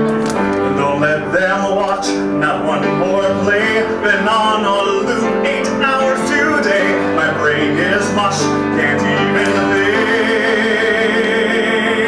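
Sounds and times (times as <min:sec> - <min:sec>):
piano chords: 0:00.0 - 0:12.0
man singing a pop ballad: 0:00.7 - 0:12.0.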